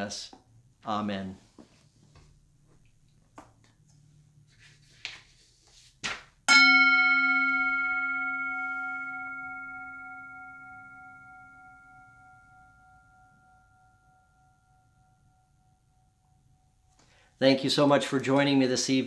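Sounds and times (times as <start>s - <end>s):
singing bowl handling noises: 6.5s - 14.5s
singing bowl ringing: 6.5s - 16.9s.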